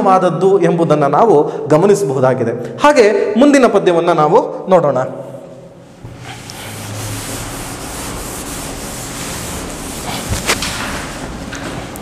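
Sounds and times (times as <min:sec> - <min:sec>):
duster scrubbing chalkboard: 0:05.8 - 0:12.0.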